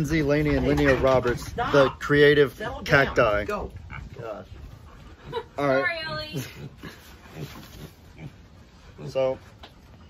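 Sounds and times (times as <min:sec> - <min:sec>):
pig grunting: 0:03.8 - 0:09.6.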